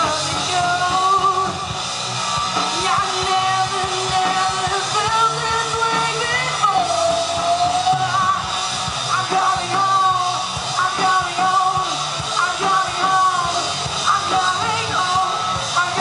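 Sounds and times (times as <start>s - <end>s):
live rock band: 0.0s - 16.0s.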